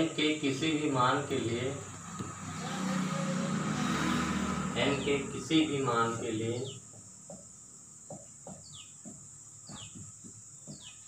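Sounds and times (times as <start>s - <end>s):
low engine hum: 0.2s - 8.1s.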